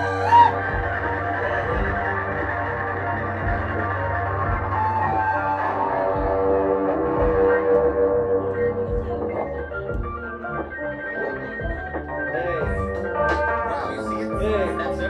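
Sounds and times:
electric guitar: 0.0 - 15.0
low bass tone: 0.0 - 15.0
synthesizer keyboard: 0.0 - 15.0.

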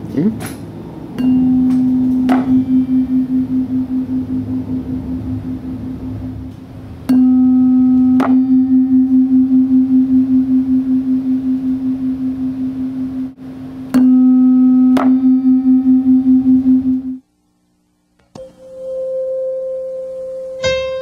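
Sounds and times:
mallet striking tuning forks: 1.1 - 17.2, 18.4 - 21.0
tuning forks ringing with beats: 1.1 - 17.2, 18.4 - 21.0.

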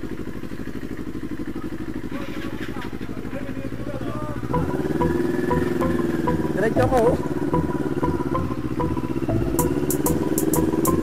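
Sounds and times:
motorcycle engine running: 0.0 - 11.0
music with drum beat: 4.5 - 11.0.

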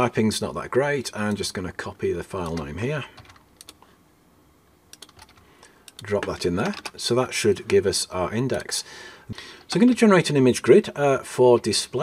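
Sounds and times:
computer keyboard keys clicking: 2.4 - 3.8, 4.9 - 7.0.

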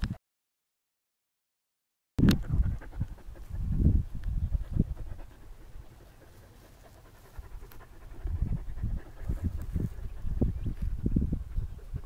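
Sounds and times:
dog panting: 2.4 - 12.0.

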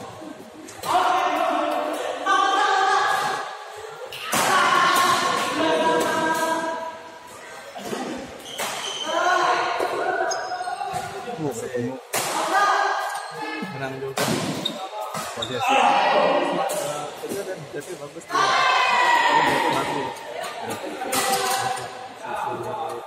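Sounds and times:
players' voices: 0.0 - 23.0.

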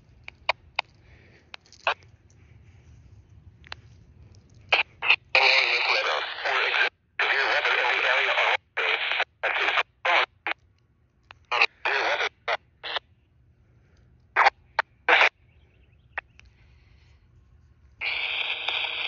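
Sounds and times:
radio static: 4.6 - 10.6, 11.2 - 13.1, 14.3 - 15.4, 18.0 - 19.0
short radio blips: 4.6 - 10.6, 11.3 - 13.1, 14.4 - 15.4, 18.0 - 19.0
garbled radio speech: 4.7 - 10.6, 11.3 - 13.0, 14.4 - 15.4, 18.0 - 19.0.

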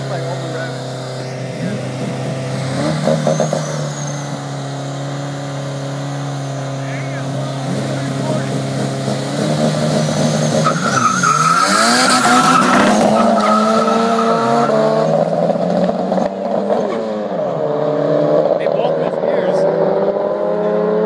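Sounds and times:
tires squealing: 0.0 - 17.7
car engines idling and revving: 0.0 - 21.0.

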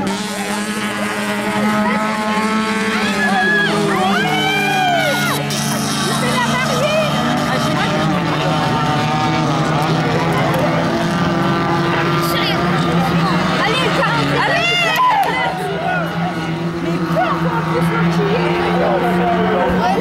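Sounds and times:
low engine drone: 0.0 - 20.0
race car engines revving: 0.0 - 20.0.

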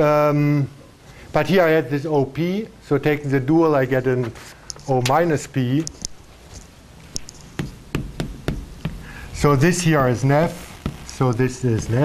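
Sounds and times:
chalk tapping on blackboard: 7.2 - 9.2, 10.5 - 12.0.

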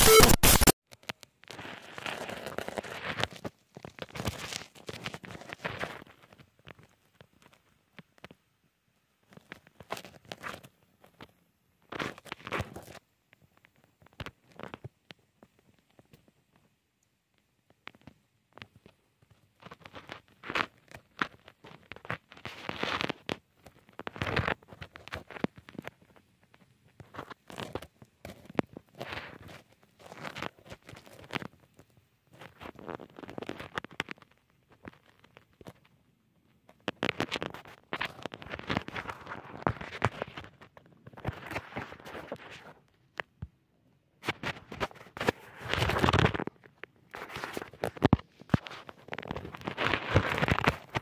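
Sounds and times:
bursts of noise: 0.0 - 0.7
crackling and rustling: 0.0 - 51.0.

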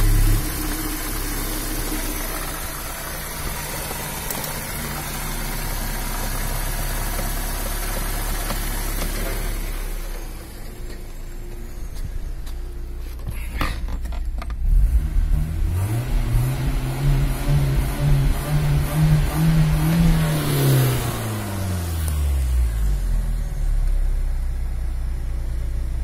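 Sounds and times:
car engine revving and idling: 0.0 - 26.0.

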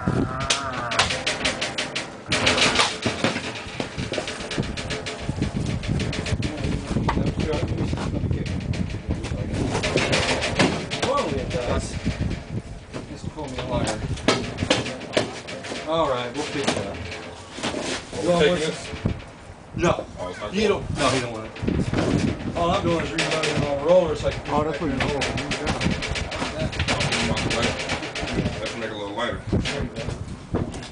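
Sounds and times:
low rumble: 0.0 - 14.6
muffled voices: 0.0 - 19.2, 19.8 - 30.9
plastic trays knocking and rattling: 0.0 - 19.3, 21.0 - 29.0.

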